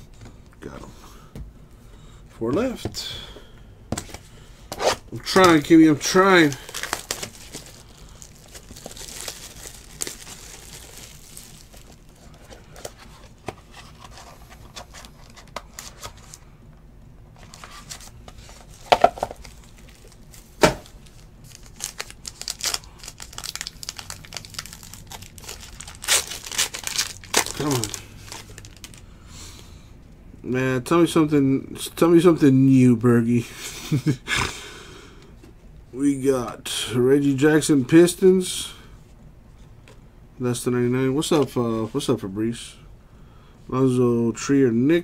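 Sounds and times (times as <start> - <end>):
card pack wrappers crinkling: 5.2 - 16.4, 17.4 - 29.0
cards rustling: 5.2 - 16.4, 17.4 - 29.0.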